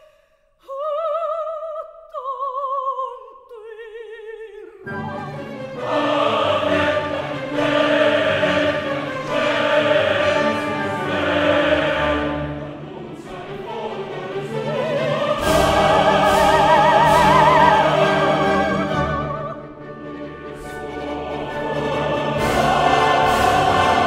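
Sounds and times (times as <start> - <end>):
opera chorus with orchestra: 0.6 - 24.0.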